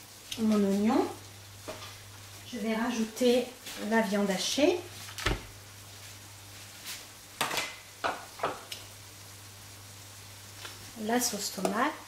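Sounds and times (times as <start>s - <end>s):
food thumping into pan: 5.1s - 5.6s, 7.4s - 8.9s.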